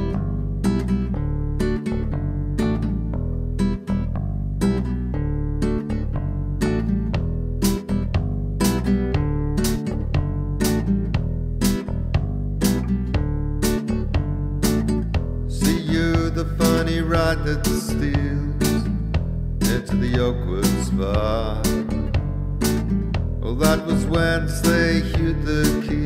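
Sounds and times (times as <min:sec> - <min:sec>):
classical guitar strumming chords: 0:00.0 - 0:26.0.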